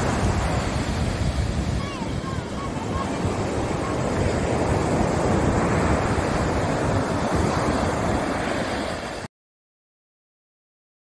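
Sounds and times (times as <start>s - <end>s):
waves breaking on beach: 0.0s - 9.3s
wind rumbling on microphone: 0.0s - 9.3s.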